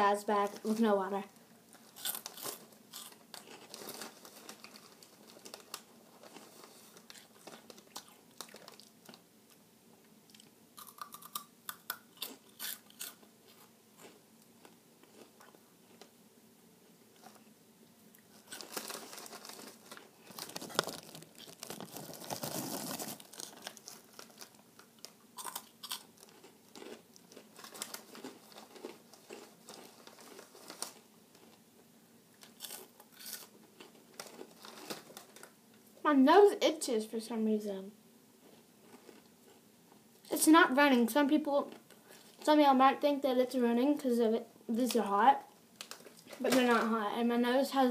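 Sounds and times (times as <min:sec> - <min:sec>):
crunching snacks: 0:01.8 - 0:09.2, 0:10.3 - 0:16.1, 0:18.2 - 0:31.6, 0:32.4 - 0:35.6, 0:38.4 - 0:39.6
rustling: 0:18.3 - 0:24.6.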